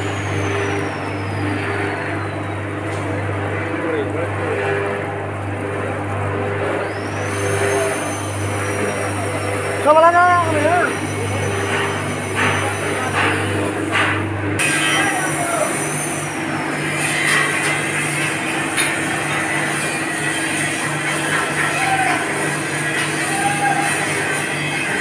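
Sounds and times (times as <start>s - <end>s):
drum roaster running: 0.0s - 25.0s.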